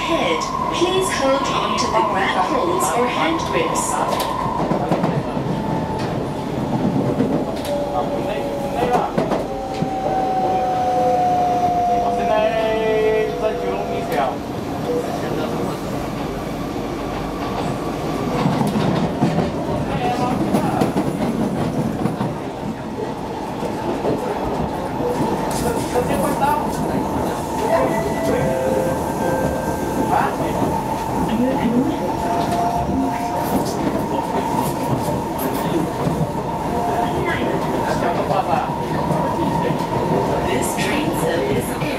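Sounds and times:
train wheels rumbling on track: 0:00.0 - 0:41.9.

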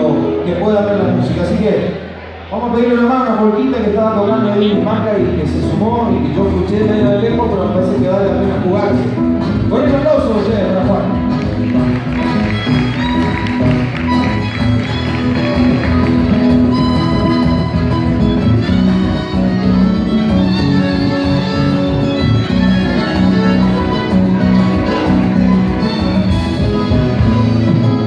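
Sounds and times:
guitar: 0:00.0 - 0:28.0.

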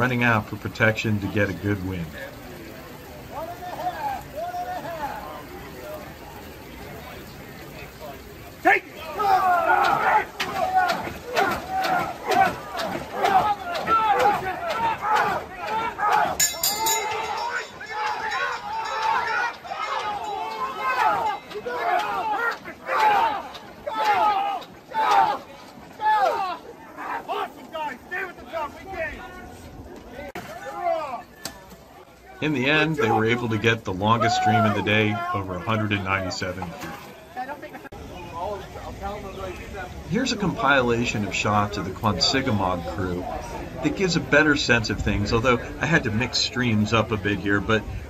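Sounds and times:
crew yelling together: 0:08.7 - 0:27.8.

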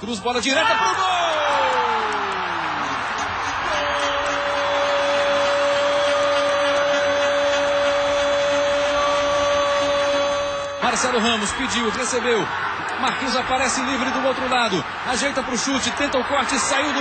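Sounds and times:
stadium crowd noise: 0:00.0 - 0:17.0
commentator's long goal shout: 0:00.6 - 0:11.4.

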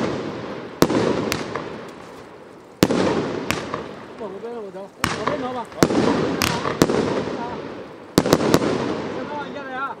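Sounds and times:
echo of bangs: 0:00.0 - 0:02.0, 0:02.8 - 0:04.3, 0:05.0 - 0:09.5
fireworks bangs: 0:00.0 - 0:10.0.

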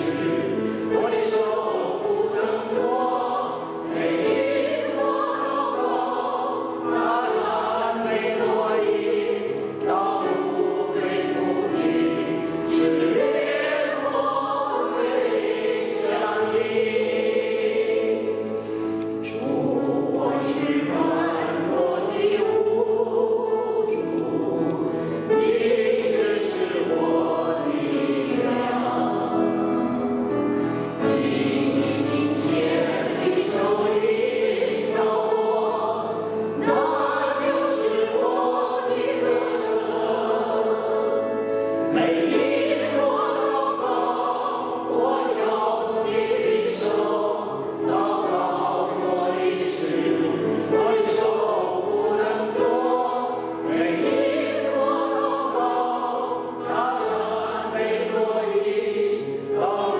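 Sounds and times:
group singing a hymn: 0:00.0 - 0:59.9.

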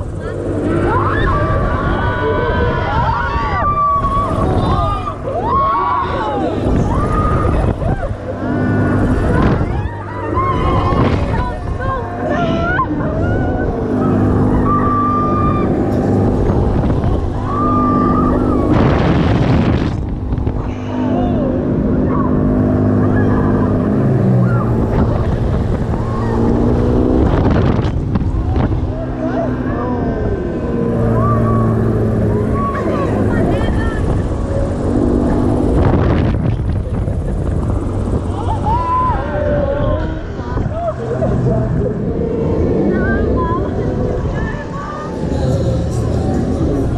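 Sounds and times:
ride mechanical drone: 0:00.0 - 0:46.9
wind buffeting microphone: 0:00.0 - 0:46.9.

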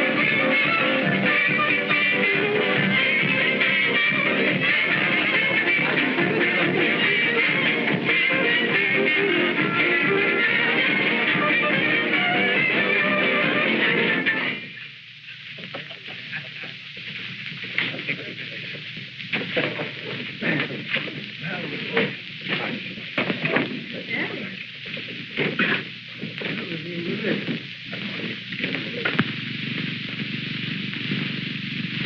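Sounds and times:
dance band music: 0:00.0 - 0:14.7
quiet voices: 0:15.2 - 0:30.0.

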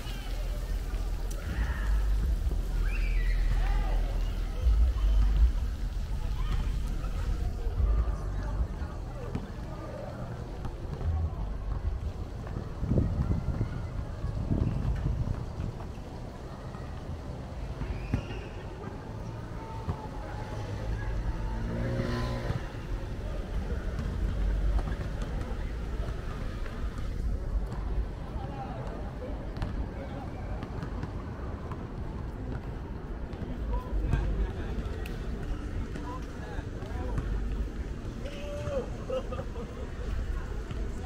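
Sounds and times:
low traffic rumble: 0:00.0 - 0:41.0
people's voices: 0:00.0 - 0:41.0
vehicle passing: 0:20.4 - 0:24.6.

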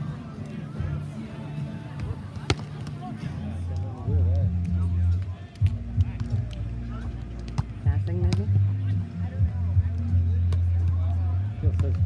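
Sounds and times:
faint background voices: 0:00.0 - 0:12.0
hand slapping volleyball: 0:02.0 - 0:03.0.

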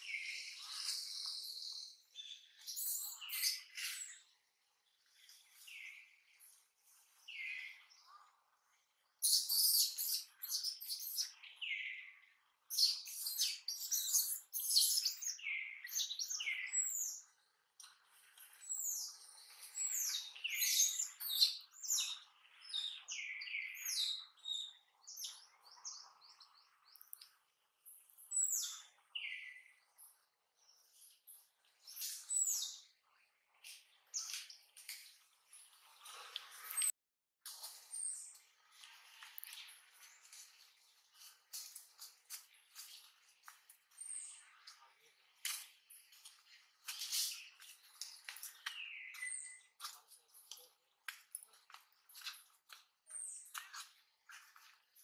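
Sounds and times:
birds chirping: 0:37.9 - 0:55.0.

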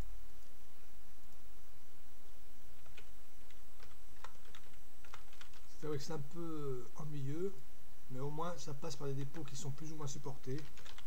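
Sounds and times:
keyboard typing: 0:02.8 - 0:05.8, 0:09.2 - 0:11.0.

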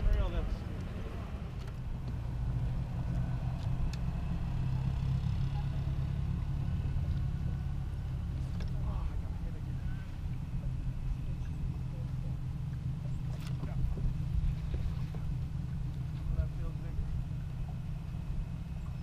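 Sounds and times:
boat motor humming: 0:00.0 - 0:19.0.

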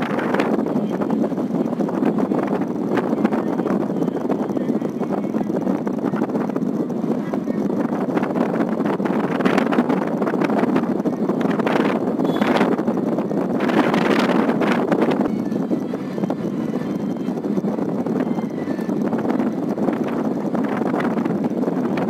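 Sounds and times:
road noise inside car: 0:00.0 - 0:22.0
wind gusting over microphone: 0:00.0 - 0:22.0.

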